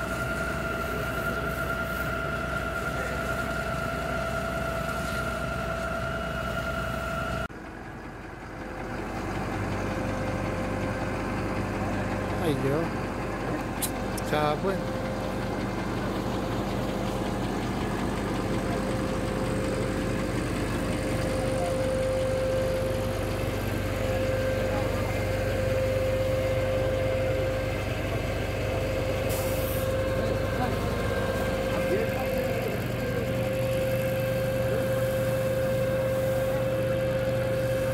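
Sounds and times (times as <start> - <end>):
engine idling: 0.0 - 37.9
faint voices: 20.6 - 37.5.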